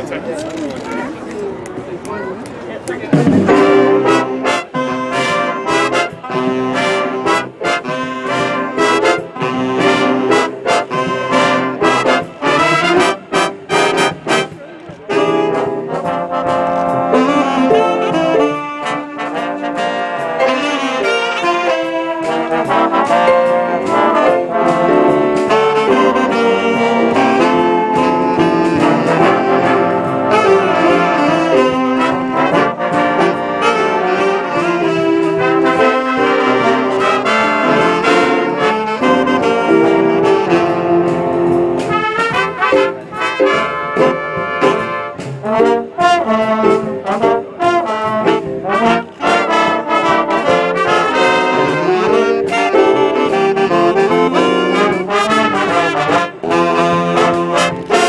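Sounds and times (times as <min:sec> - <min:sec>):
jazz big band playing: 0:00.0 - 0:58.0.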